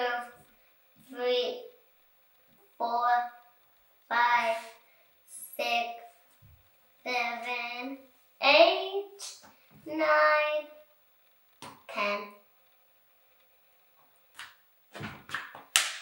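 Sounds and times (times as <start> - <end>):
child counting aloud: 0.0 - 0.4, 1.1 - 1.6, 2.8 - 3.4, 4.1 - 6.1, 7.1 - 9.3, 9.9 - 10.8, 11.9 - 12.4.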